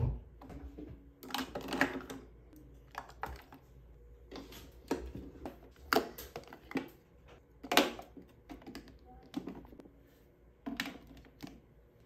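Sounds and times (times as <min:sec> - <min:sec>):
plastic containers clicking and tapping: 0:01.2 - 0:03.6, 0:04.3 - 0:09.8, 0:10.6 - 0:11.6.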